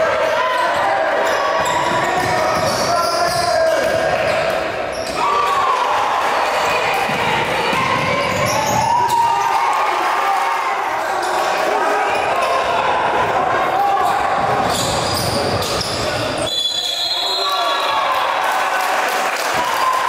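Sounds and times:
indistinct voices echoing: 0.0 - 18.6.

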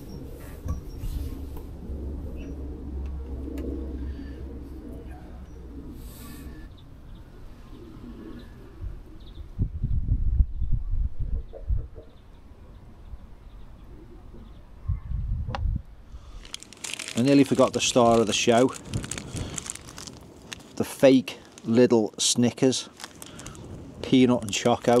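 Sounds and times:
pigeon cooing: 0.0 - 9.5, 13.8 - 15.1
wind rumble on microphone: 8.3 - 20.7, 23.0 - 25.0.

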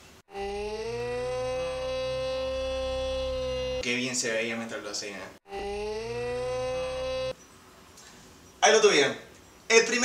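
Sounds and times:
low hum: 0.3 - 3.8, 5.5 - 7.4.

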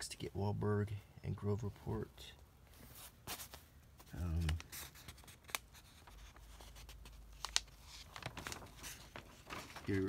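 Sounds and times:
newspaper rustling: 2.6 - 10.0
sharp paper crackle: 2.9 - 10.0.

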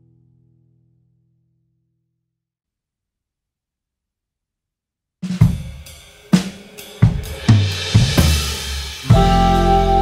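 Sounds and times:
band playing: 7.9 - 10.0.

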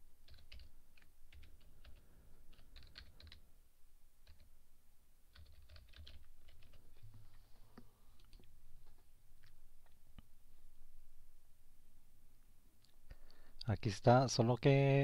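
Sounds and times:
typing on computer keyboard: 0.2 - 3.4, 4.2 - 4.5, 5.3 - 7.0.

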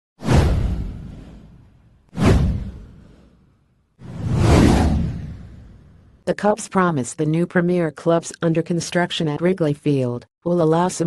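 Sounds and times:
deep whoosh effects: 0.2 - 6.2.

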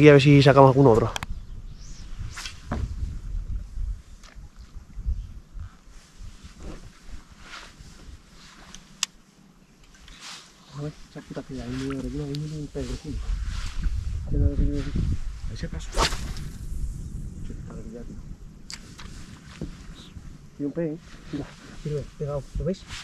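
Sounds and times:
wind rumble on microphone: 0.0 - 8.6, 10.8 - 23.0.

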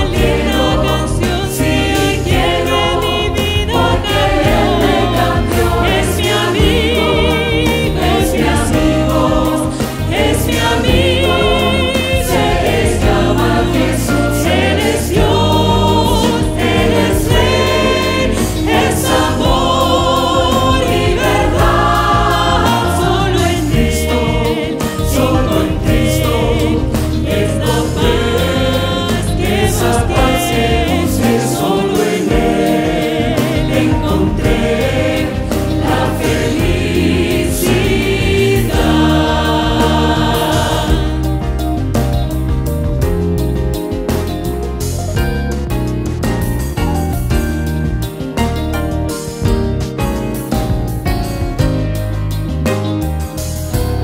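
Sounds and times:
choir singing: 0.0 - 42.3
live band playing: 0.0 - 54.0.

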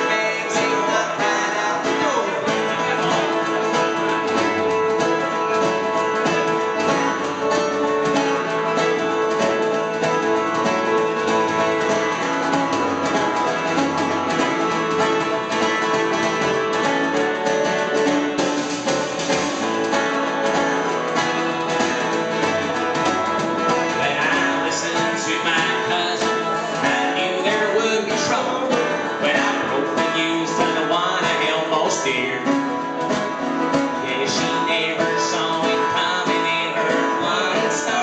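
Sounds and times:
man singing: 0.0 - 13.6, 23.7 - 38.0
acoustic guitar: 0.0 - 38.0
drum kit: 0.0 - 38.0.

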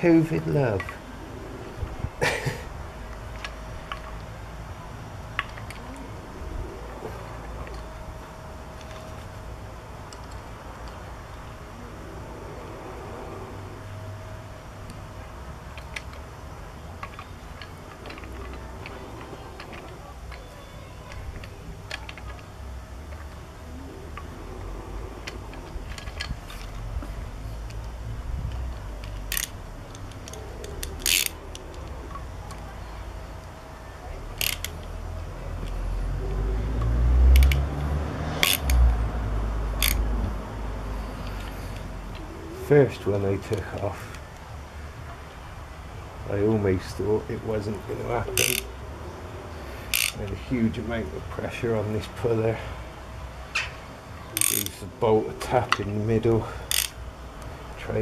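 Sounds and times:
low rumble: 0.0 - 20.3
hand tools clicking on metal: 28.5 - 32.7, 34.4 - 35.0, 38.4 - 38.9, 39.8 - 40.0, 48.3 - 48.7, 49.9 - 50.4, 54.4 - 54.8, 56.5 - 57.5.

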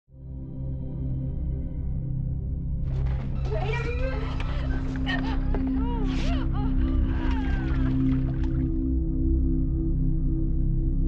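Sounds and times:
low droning horror music: 0.2 - 11.0.

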